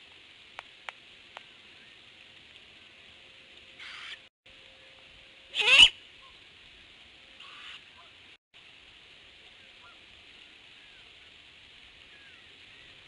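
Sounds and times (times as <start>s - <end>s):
owlets hissing screeches: 3.8s - 4.2s.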